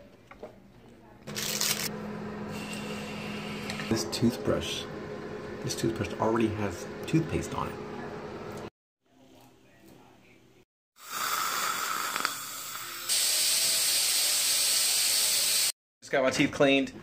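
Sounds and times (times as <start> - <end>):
dental instruments hissing: 11.0 - 15.8.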